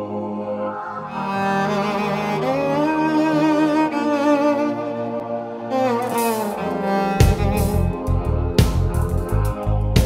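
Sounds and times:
low sustained drone: 0:00.0 - 0:03.4
bowed string melody: 0:01.1 - 0:10.0.

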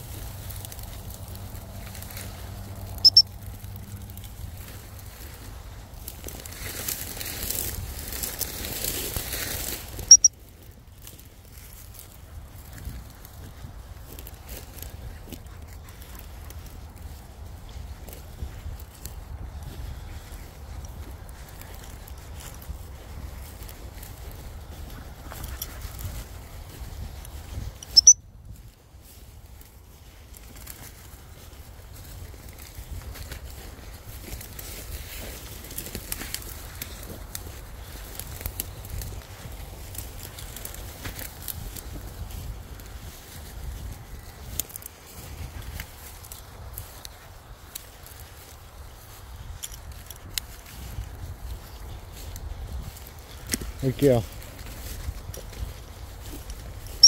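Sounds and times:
grass rustling underfoot: 0:00.0 - 0:57.0
wind buffeting microphone: 0:03.4 - 0:57.0.

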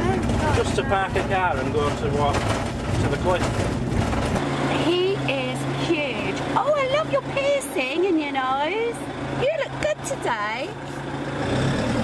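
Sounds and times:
engine and road rumble: 0:00.0 - 0:12.0.

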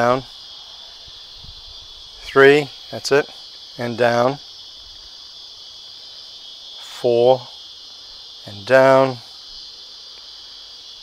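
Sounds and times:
insect chorus trilling: 0:00.0 - 0:11.0.

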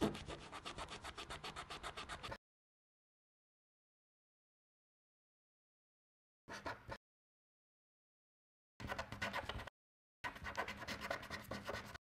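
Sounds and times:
marker pen scratching on card: 0:00.0 - 0:02.4, 0:08.8 - 0:12.0.

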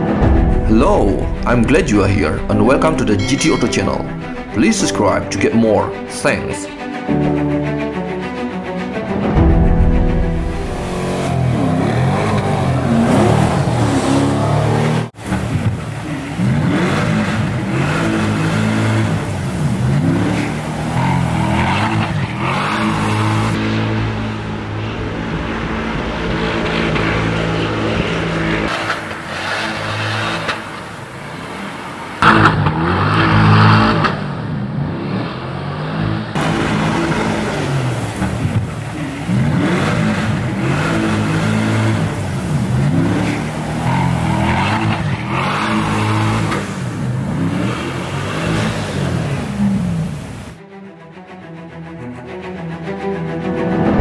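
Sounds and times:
car engine revving hard: 0:10.5 - 0:50.6.

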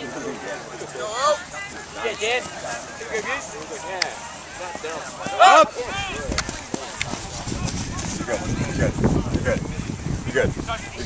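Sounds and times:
people shouting: 0:04.2 - 0:06.6
wind on microphone: 0:05.8 - 0:11.0.

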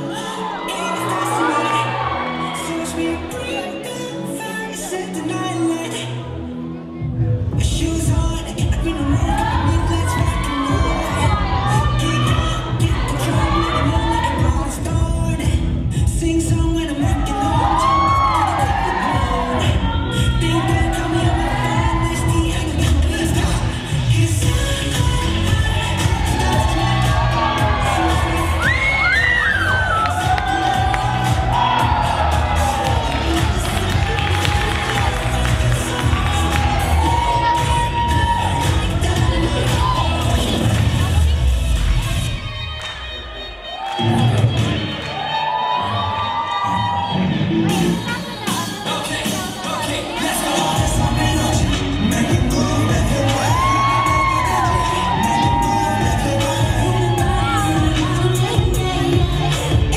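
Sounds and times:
audience cheering and shouting: 0:00.0 - 0:06.0, 0:07.5 - 0:59.9
dance music with vocals: 0:00.0 - 0:59.9.

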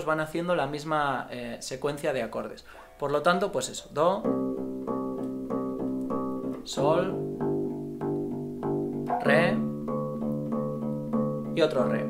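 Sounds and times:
electric bass plucking: 0:04.2 - 0:12.0.

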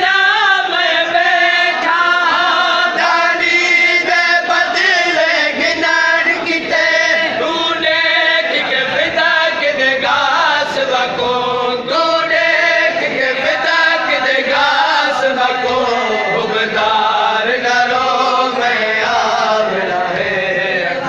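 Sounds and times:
men chanting a lament: 0:00.0 - 0:21.0.

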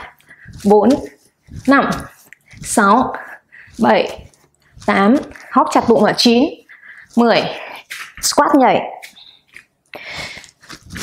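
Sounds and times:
faint movement noise: 0:00.0 - 0:11.0.

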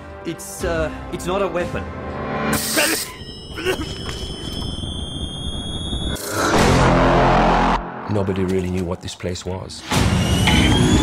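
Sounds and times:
high-pitched electronic whine: 0:03.2 - 0:07.8, 0:10.0 - 0:11.0.

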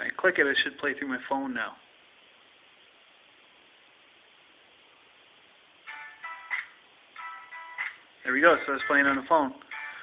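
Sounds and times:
faint room tone hiss: 0:00.0 - 0:10.0
song from phone speaker: 0:05.8 - 0:10.0.

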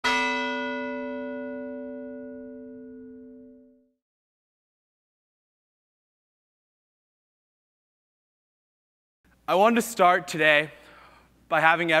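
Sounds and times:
bell-like chime note: 0:00.0 - 0:04.0.

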